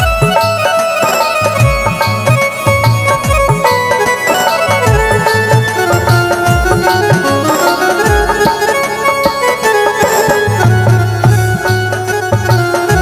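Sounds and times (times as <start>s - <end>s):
sustained reed melody: 0.0s - 13.0s.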